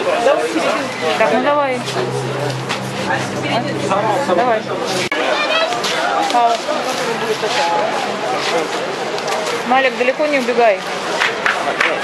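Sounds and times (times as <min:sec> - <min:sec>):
people talking: 0:00.0 - 0:10.8
steady background noise: 0:00.0 - 0:12.0.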